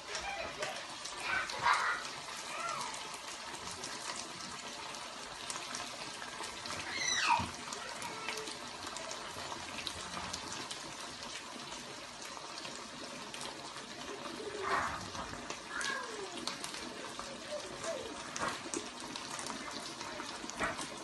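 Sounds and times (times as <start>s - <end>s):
water running from tap: 0.0s - 21.0s.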